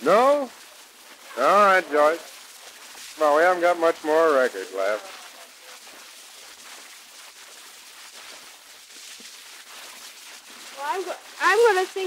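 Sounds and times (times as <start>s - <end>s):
faint crackles: 0.0s - 12.0s
voices: 1.3s - 2.3s, 10.8s - 12.0s.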